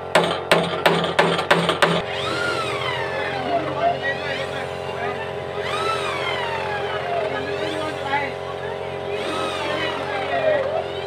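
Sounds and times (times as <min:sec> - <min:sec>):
hammer knocking on wood: 0:00.1 - 0:02.0
cordless drill whine: 0:02.0 - 0:11.0.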